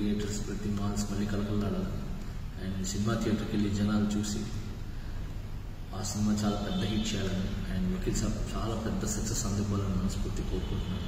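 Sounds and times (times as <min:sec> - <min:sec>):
man speaking: 0:00.0 - 0:04.8, 0:05.9 - 0:11.0.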